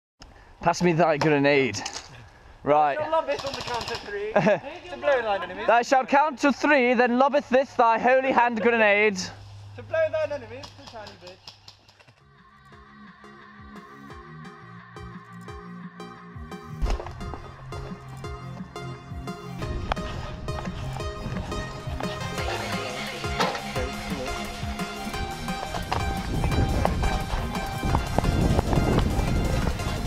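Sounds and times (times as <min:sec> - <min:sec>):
background music with steady beat: 0:12.2 - 0:30.0.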